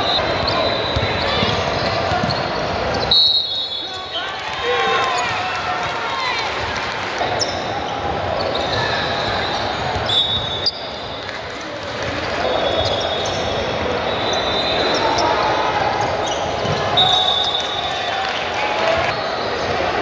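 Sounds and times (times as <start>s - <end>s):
sneakers squeaking: 0.0s - 5.5s, 7.2s - 11.4s, 12.2s - 18.0s.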